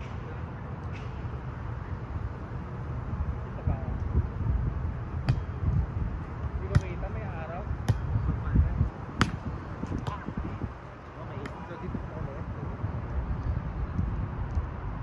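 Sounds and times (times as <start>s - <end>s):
wind rumble on microphone: 3.0s - 15.0s.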